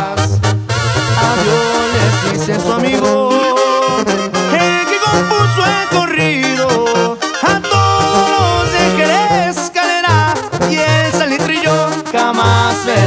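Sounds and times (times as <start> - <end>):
pulsing tuba bass line: 0.0 - 13.0
trumpets and trombones melody: 0.0 - 13.0
percussion hits: 8.2 - 9.6.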